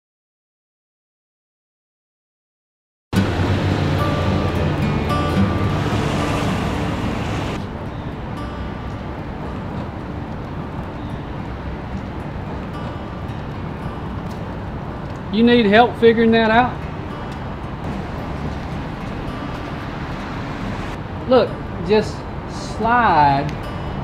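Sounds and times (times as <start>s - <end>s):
music: 3.2s - 24.0s
steady outdoor hiss: 3.2s - 24.0s.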